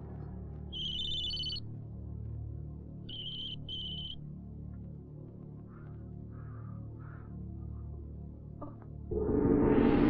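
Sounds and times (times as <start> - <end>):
low musical drone: 4.2 - 10.0.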